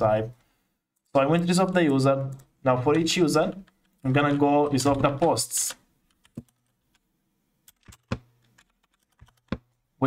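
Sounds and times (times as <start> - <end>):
computer keyboard typing: 6.1 - 7.0, 7.7 - 9.8.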